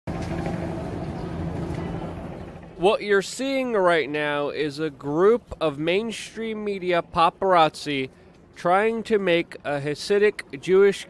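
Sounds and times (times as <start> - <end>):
vehicle engine running: 0.1 - 6.0
street noise: 0.1 - 11.0.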